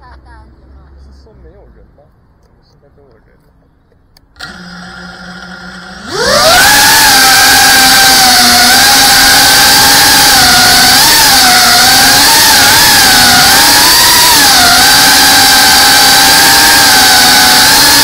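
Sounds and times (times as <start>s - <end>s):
quadcopter motors whining: 4.3s - 18.0s.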